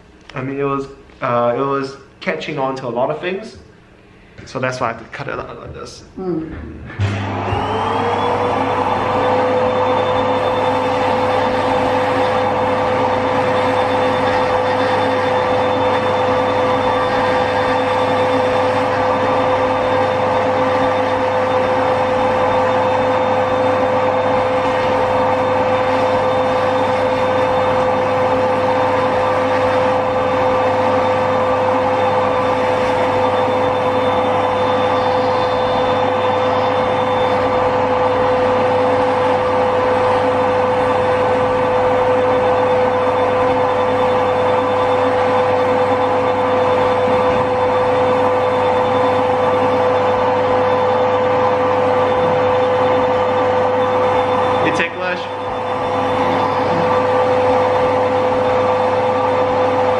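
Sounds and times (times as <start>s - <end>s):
electric nail drill whining: 7.0s - 59.9s.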